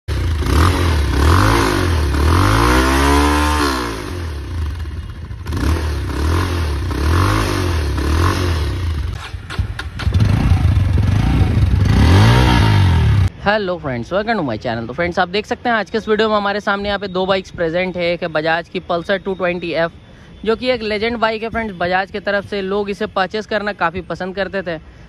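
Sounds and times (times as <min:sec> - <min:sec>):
motorcycle engine revving: 0:00.1 - 0:13.3.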